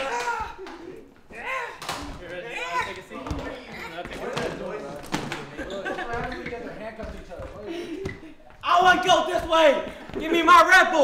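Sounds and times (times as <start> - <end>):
indistinct voices in a room: 0.0 - 11.0.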